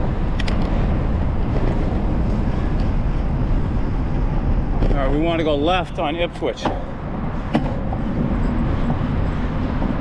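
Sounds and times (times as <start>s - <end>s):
road noise: 0.0s - 10.0s
wind rumble on microphone: 0.0s - 10.0s.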